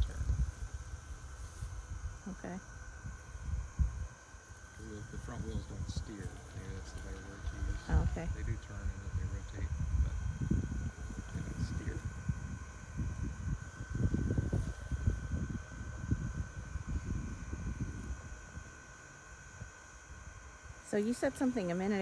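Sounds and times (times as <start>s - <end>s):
wind rumble on microphone: 0.0s - 22.0s.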